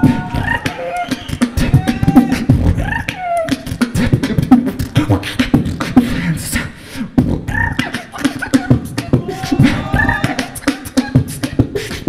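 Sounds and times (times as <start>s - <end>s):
person beatboxing: 0.0s - 12.0s.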